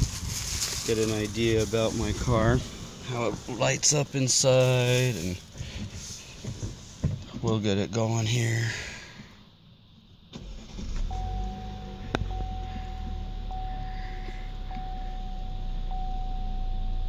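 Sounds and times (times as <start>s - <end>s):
car engine starting and idling: 0.4s - 17.0s
pulsing electronic tone: 11.1s - 17.0s.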